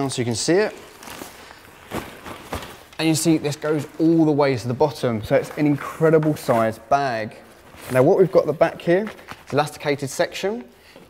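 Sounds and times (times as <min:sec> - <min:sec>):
rucksack fabric rustling: 0:00.0 - 0:11.0.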